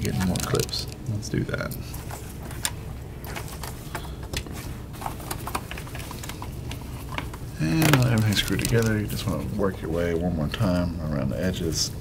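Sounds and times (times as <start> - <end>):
plastic rubbing: 1.9 - 10.2.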